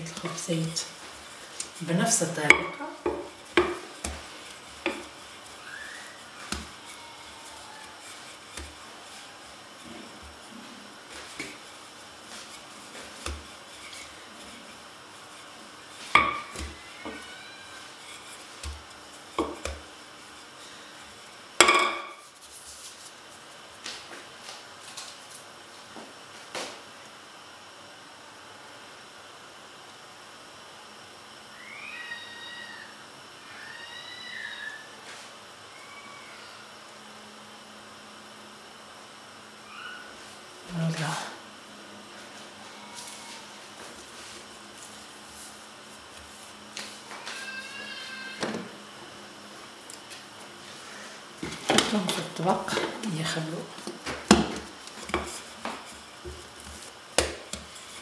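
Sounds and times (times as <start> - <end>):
hands kneading bread dough: 0.1 - 21.4, 22.2 - 25.1, 42.2 - 47.6, 49.8 - 58.0
ringing knocks on work surface: 21.6 - 22.2.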